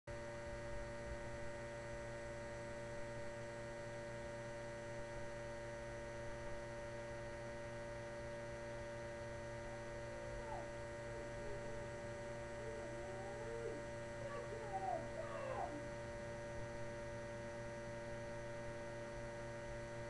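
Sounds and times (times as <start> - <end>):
electrical hum: 0.1 - 20.0
whining tones: 9.6 - 16.0.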